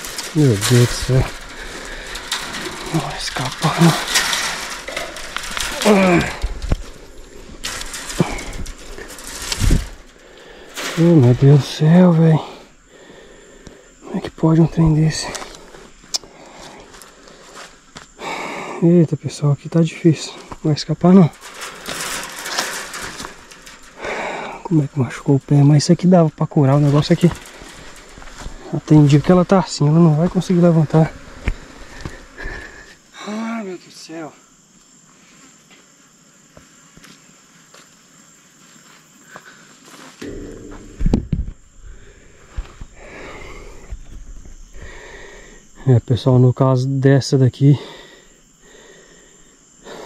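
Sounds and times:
scuffling and knocks: 0:00.0 - 0:12.7, 0:20.4 - 0:32.4
insects buzzing: 0:00.0 - 0:50.0
low thud: 0:40.2 - 0:43.0.

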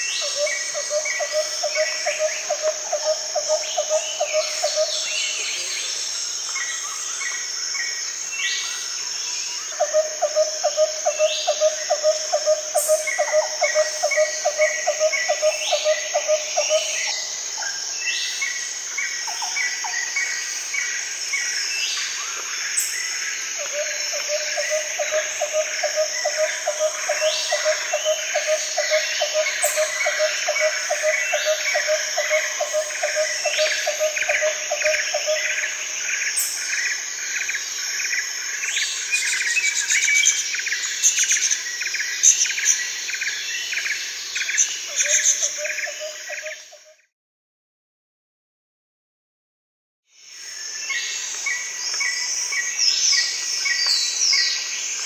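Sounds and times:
high insect chorus: 0:00.0 - 0:47.0, 0:50.1 - 0:55.0.

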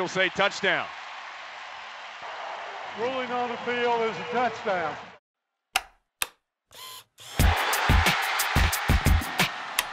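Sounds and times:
stadium crowd voices: 0:00.0 - 0:05.2.

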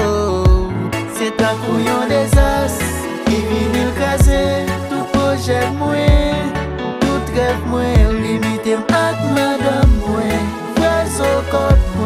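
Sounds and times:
theme music with bass: 0:00.0 - 0:12.0
deep drum hit: 0:04.2 - 0:04.6.

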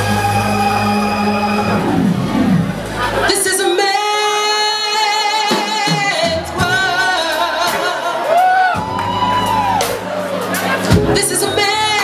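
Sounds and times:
soul band sustained chord: 0:00.0 - 0:03.4.

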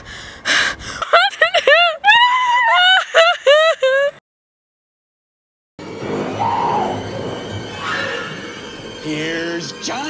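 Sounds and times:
woman sobbing cries: 0:00.5 - 0:04.2.

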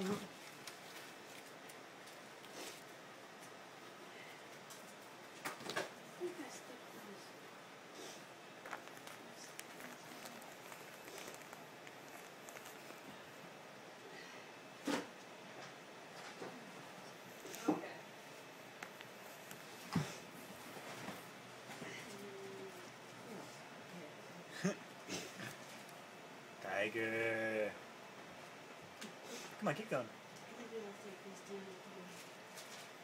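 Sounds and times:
wrapping paper crinkling: 0:00.2 - 0:02.9, 0:08.6 - 0:13.3.

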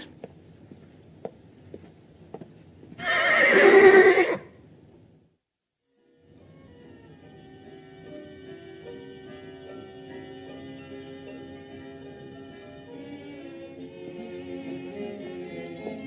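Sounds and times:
horse whinnying: 0:03.0 - 0:04.6
quiet background music: 0:05.9 - 0:16.0.

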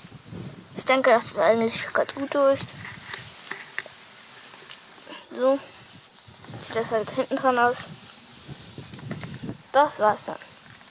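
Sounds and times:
steady hiss: 0:00.0 - 0:10.9.

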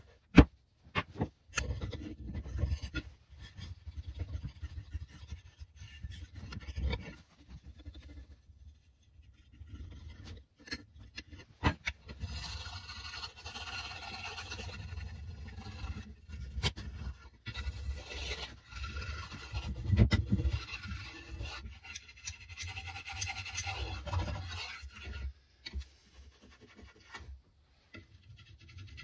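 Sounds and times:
rough scratching on wood: 0:01.0 - 0:29.0.

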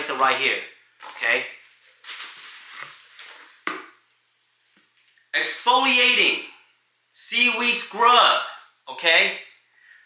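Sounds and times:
bubble wrap crinkling: 0:01.0 - 0:03.9.

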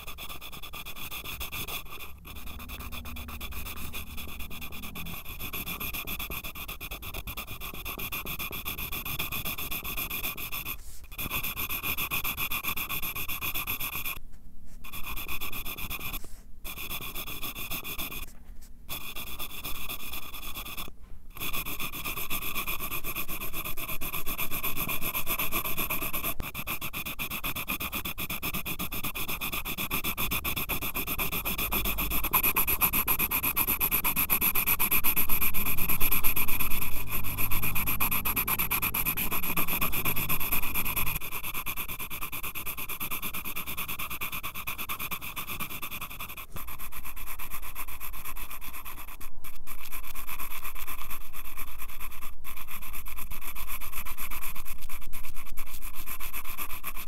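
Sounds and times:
pencil scratching on paper: 0:00.0 - 0:57.0.

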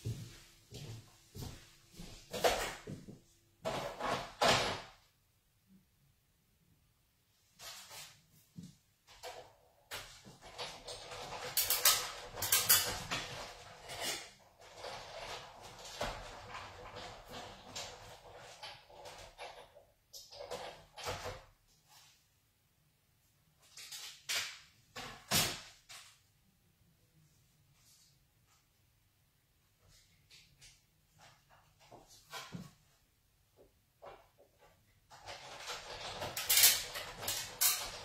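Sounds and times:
hand-cranked machine creaks and clicks: 0:10.0 - 0:21.4, 0:35.1 - 0:38.0.

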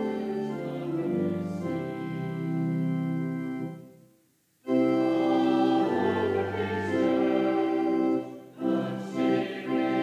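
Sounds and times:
organ playing hymn chords: 0:00.0 - 0:04.0, 0:04.6 - 0:10.0.

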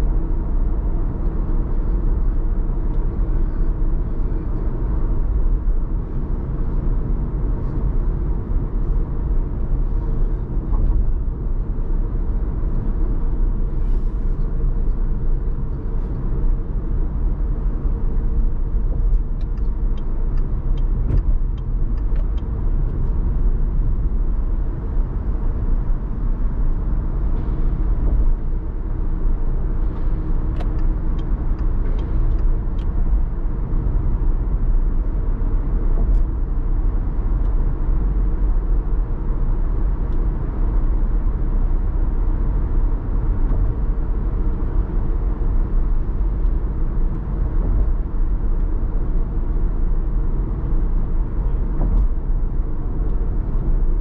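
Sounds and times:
car engine and road rumble: 0:00.0 - 0:54.0.

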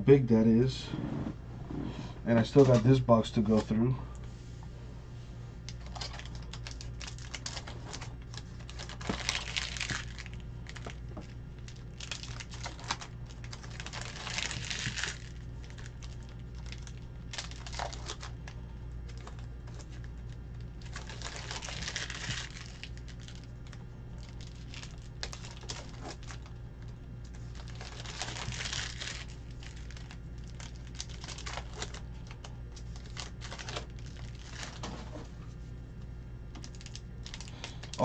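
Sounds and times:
low steady hum: 0:00.0 - 0:38.0
foil wrapper crinkling and tearing: 0:05.7 - 0:35.0, 0:36.5 - 0:38.0.

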